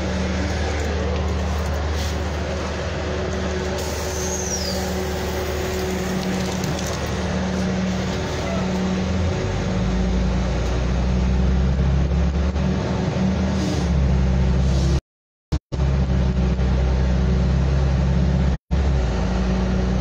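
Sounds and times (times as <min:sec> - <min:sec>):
vehicle engine and road noise: 0:00.0 - 0:20.0.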